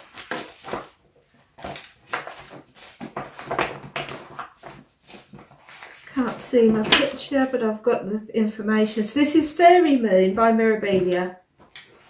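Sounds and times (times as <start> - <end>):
plastic bag and paper rustling: 0.0 - 7.4.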